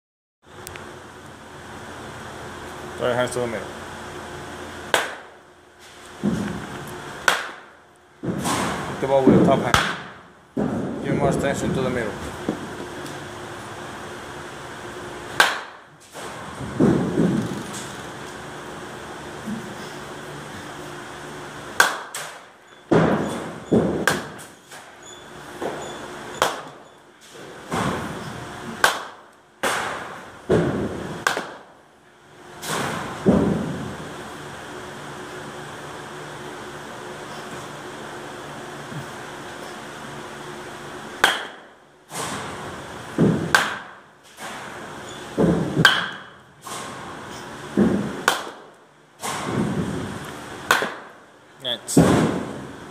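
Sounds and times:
baseball bat cracking ball: 4.9 - 5.4, 7.2 - 8.9, 9.7 - 10.9, 15.3 - 17.4, 21.8 - 24.5, 26.4 - 26.8, 27.7 - 31.7, 41.2 - 42.6, 43.2 - 44.7, 45.4 - 47.0, 47.8 - 50.0, 50.6 - 51.2, 52.0 - 52.6.

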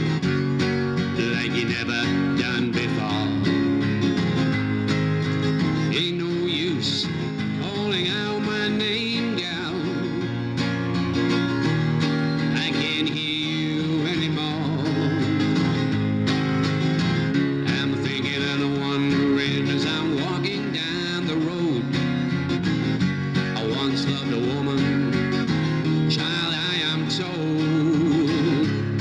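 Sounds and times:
acoustic guitar strumming: 0.0 - 29.0.

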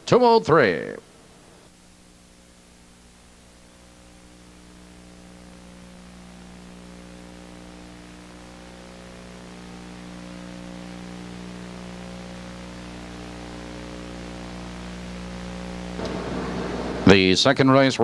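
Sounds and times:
electrical mains hum: 0.0 - 18.0
steady tape hiss: 0.0 - 18.0.

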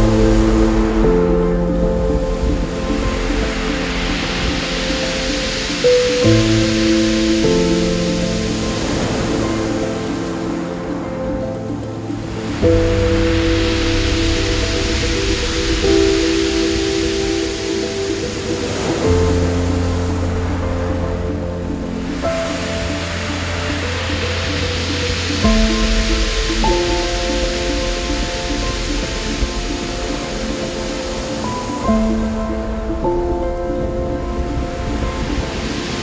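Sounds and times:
rushing wash of noise: 0.0 - 36.0.

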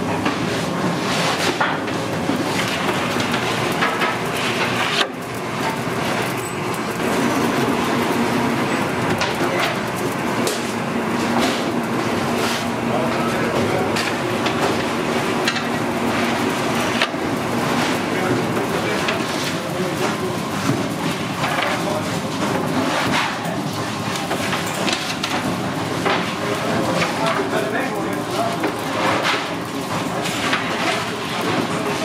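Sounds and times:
machine rumble and hum: 0.0 - 32.0.

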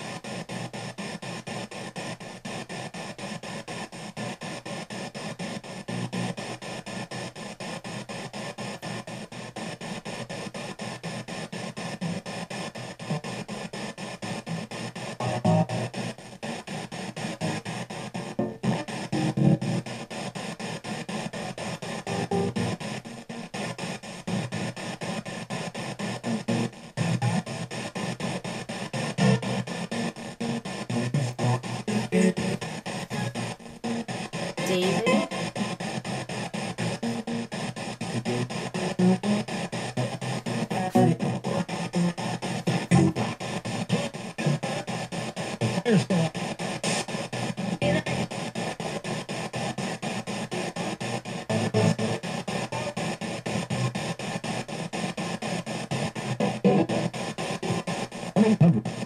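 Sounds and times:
choppy radio static: 0.0 - 59.0
snatches of broadcast sound: 0.0 - 59.0.

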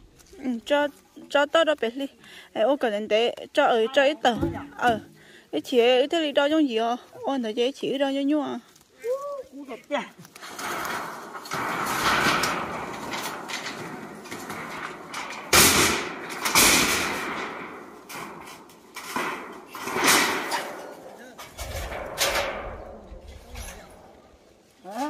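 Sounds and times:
corrugated metal sheets rattling: 10.0 - 25.0
sharp metallic bangs: 10.4 - 24.4.

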